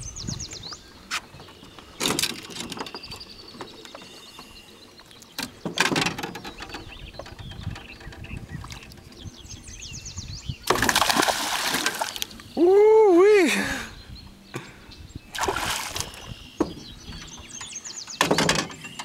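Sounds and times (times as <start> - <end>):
songbird chirping trills: 0.0 - 19.0
fish thrashing in water: 10.7 - 12.3, 15.4 - 16.2.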